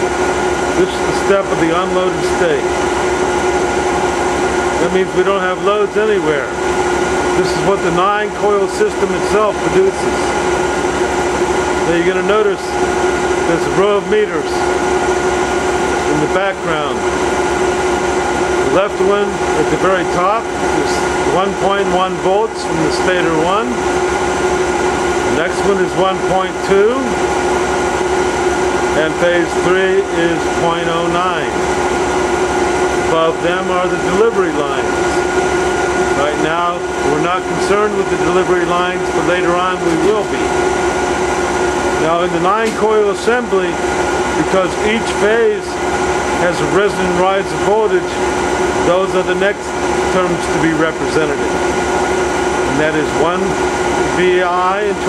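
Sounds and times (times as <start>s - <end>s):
generator whirring and humming: 0.0s - 55.0s
machine drone: 0.0s - 55.0s.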